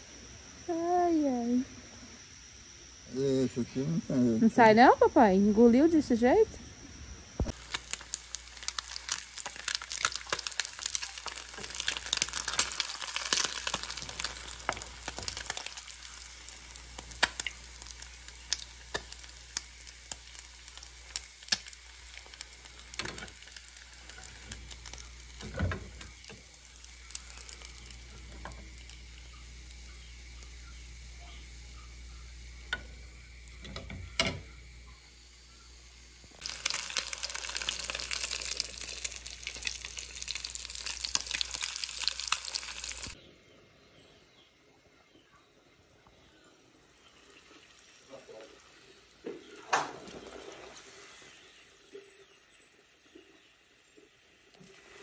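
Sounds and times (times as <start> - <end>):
fish sizzling in hot oil: 7.5 - 43.2.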